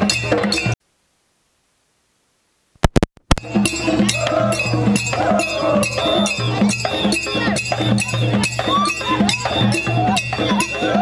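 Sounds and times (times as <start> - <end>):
clinking iron percussion: 0.0 - 0.8, 3.4 - 11.0
hand drums: 3.4 - 11.0.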